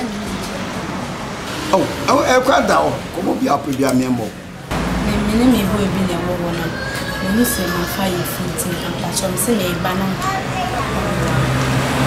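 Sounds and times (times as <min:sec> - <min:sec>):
woman talking: 0:04.9 - 0:11.6.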